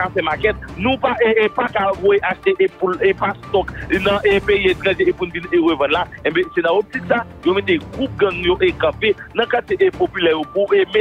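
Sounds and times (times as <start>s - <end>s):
background music: 0.0s - 11.0s
person talking: 0.0s - 11.0s.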